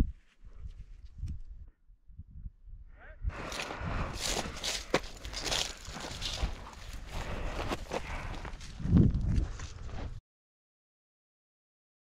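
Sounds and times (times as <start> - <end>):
footsteps crunching through brush: 3.4 - 10.2.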